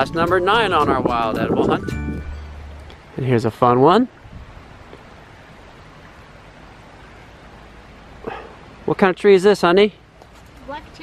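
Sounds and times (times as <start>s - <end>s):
outdoor ambient hiss: 0.0s - 11.0s.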